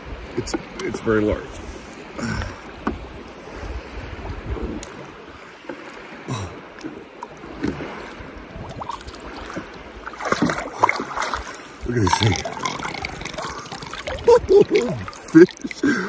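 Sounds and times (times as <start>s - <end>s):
water sloshing and splashing: 0.2s - 16.0s
low wind rumble on microphone: 1.4s - 5.5s, 7.5s - 10.7s.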